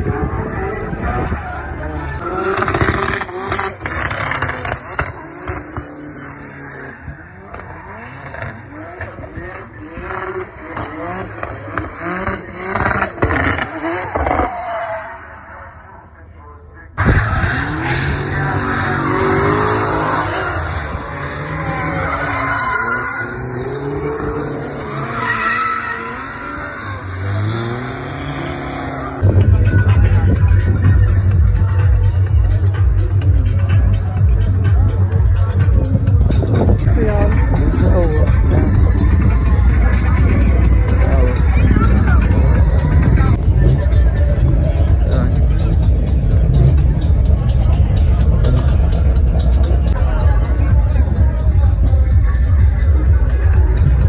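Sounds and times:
car engine revving: 0.0 - 54.0
tyres skidding and squealing: 0.0 - 54.0
music with heavy bass beat: 29.2 - 54.0.

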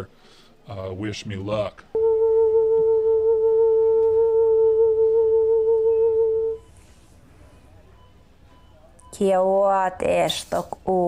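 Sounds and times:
woman humming: 1.9 - 6.6.

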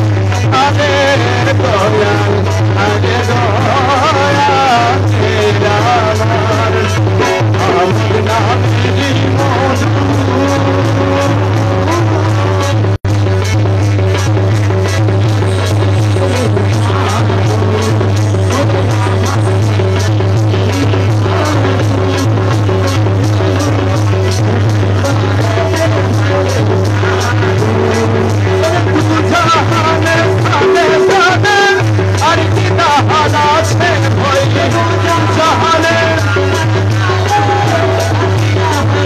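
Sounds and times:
men singing: 0.0 - 13.0, 14.8 - 39.0
harmonium: 0.0 - 39.0
tabla drums: 0.0 - 39.0.

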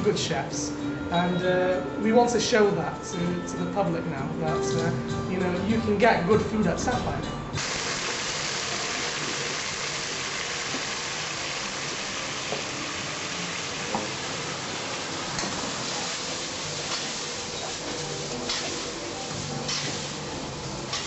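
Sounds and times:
sauce sizzling in a pan: 7.6 - 21.0.

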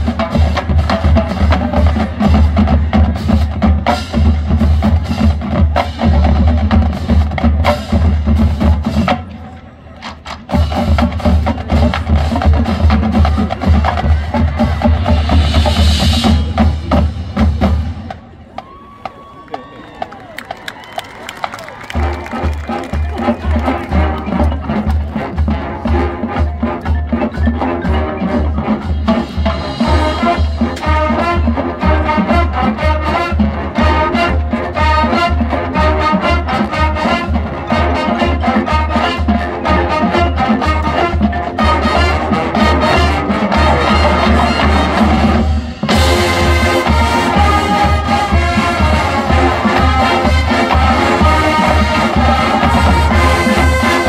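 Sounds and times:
marching band playing: 0.0 - 54.0.

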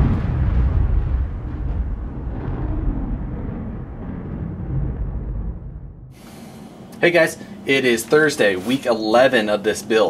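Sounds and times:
deep rumbling boom: 0.0 - 6.2.

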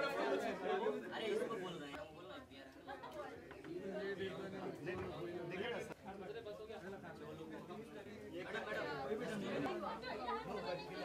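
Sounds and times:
indistinct chatter in a room: 0.0 - 11.0.

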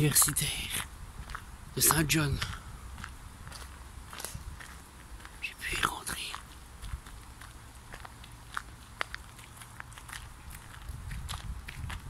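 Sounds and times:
breathy hiss near microphone: 0.0 - 7.9
footsteps on gravel: 0.0 - 12.0.

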